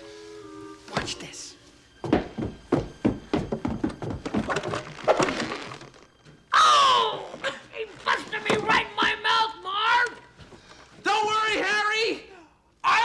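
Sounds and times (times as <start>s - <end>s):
thuds and knocks: 2.0s - 5.7s
man yelling: 6.5s - 7.2s, 8.0s - 10.3s, 11.0s - 13.0s.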